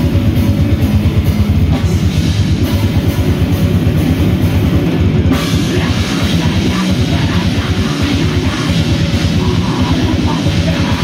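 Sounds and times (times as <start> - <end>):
distorted electric guitar: 0.0 - 11.0
metal band playing: 0.0 - 11.0
rapid kick drum: 0.0 - 11.0.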